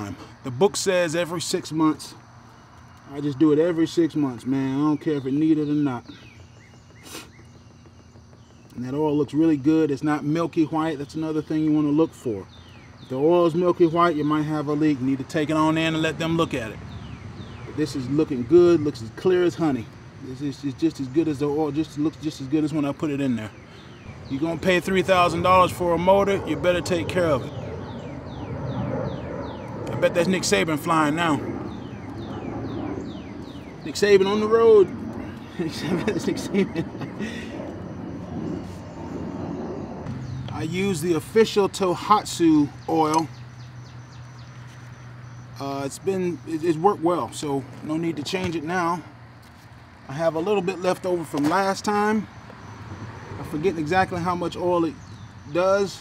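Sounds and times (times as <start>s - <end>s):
bird chirps: 1.4s - 49.1s, 50.1s - 56.0s.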